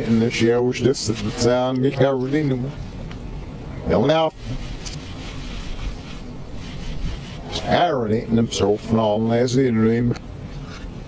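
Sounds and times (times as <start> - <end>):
man's voice played backwards: 0.0 - 2.8, 3.8 - 4.5, 7.4 - 10.2
low rumble and hiss: 0.0 - 11.0.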